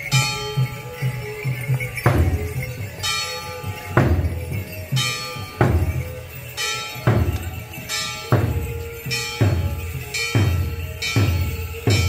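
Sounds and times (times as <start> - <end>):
drum beats: 0.0 - 12.0
ringing metal percussion strikes: 0.0 - 12.0.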